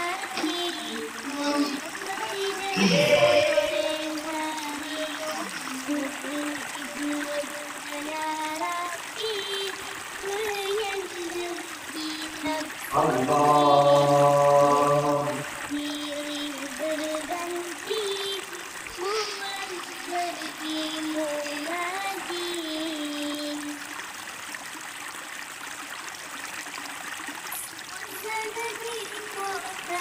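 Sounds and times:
slow melody in single voice: 0.0s - 7.7s, 12.9s - 16.0s
faint steady hiss: 0.0s - 30.0s.

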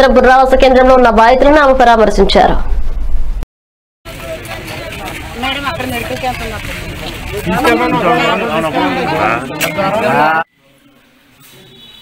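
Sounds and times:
women talking over one another: 4.2s - 10.5s.

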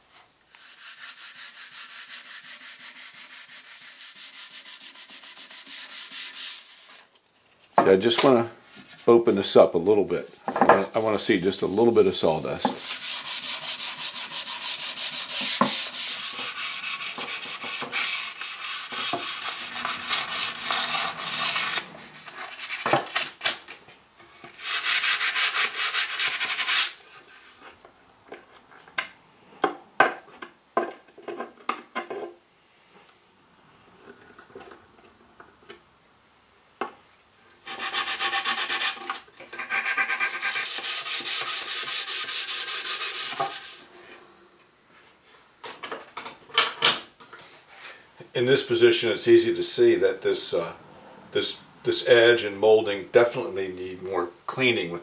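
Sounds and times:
sandpaper rasping on wood: 0.6s - 7.0s, 10.3s - 23.0s, 24.6s - 27.0s, 37.6s - 43.9s.

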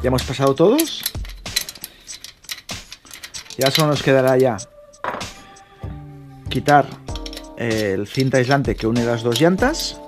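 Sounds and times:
metallic clicks of spoke: 0.2s - 5.7s.

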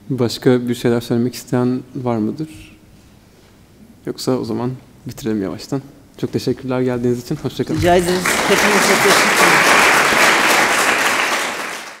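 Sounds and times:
person speaking: 7.1s - 9.8s
audience applauding: 7.7s - 12.0s.

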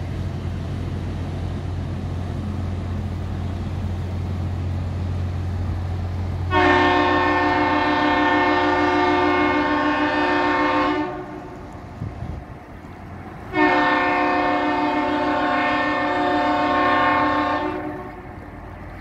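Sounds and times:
ship's horn blasts: 6.5s - 11.8s, 13.4s - 18.5s.

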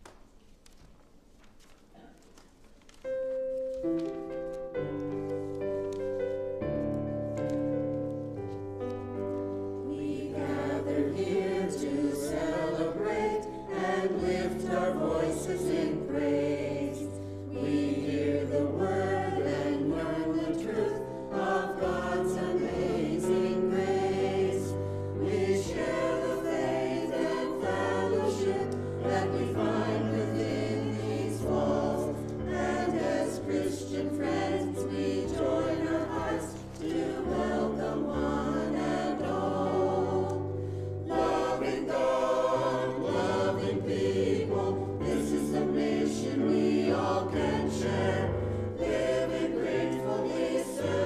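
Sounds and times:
mixed choir singing: 9.8s - 51.0s.

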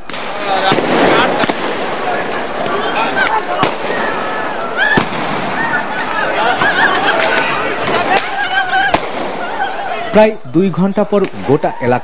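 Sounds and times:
gunshots: 0.0s - 10.0s
men shouting: 0.6s - 10.4s.

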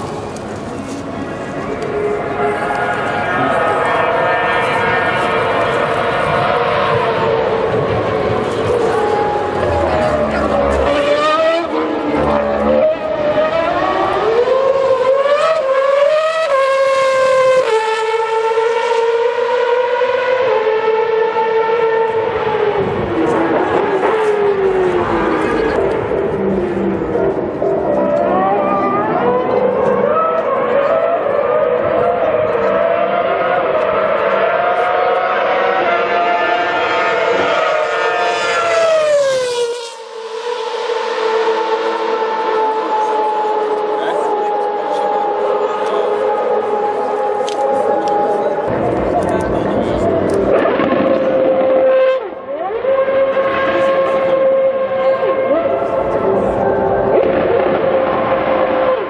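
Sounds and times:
steady engine note: 0.0s - 15.2s, 35.4s - 52.5s
racing car engine screaming: 1.9s - 59.0s.

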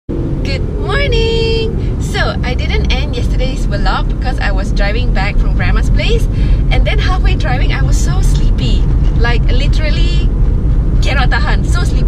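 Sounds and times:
car cabin rumble: 0.1s - 12.0s
woman calling out: 0.5s - 3.5s.

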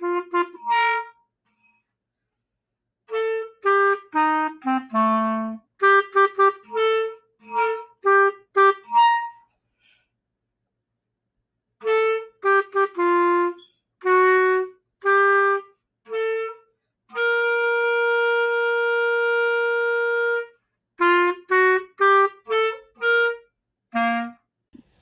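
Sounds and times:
wind instrument melody: 0.0s - 1.3s, 3.1s - 9.5s, 11.8s - 24.5s.

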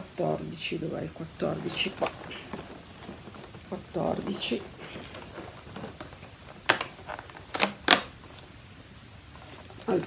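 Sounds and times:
card rustling: 1.2s - 8.6s
cardboard snaps: 6.6s - 8.2s.

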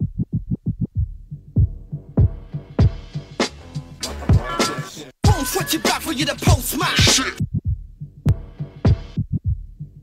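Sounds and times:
hip hop vocal over beat: 4.3s - 7.6s.

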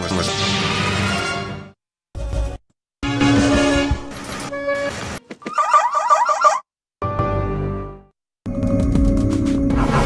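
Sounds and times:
fast warbling tone: 5.4s - 6.6s.

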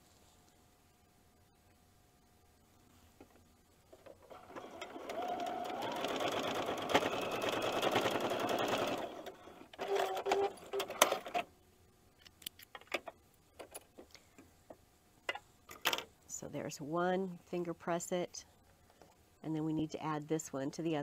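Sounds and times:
sewing machine stitching: 4.0s - 11.5s.

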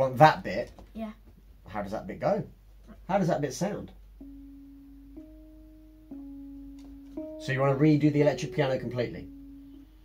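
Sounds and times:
electric piano single notes: 4.2s - 10.0s.

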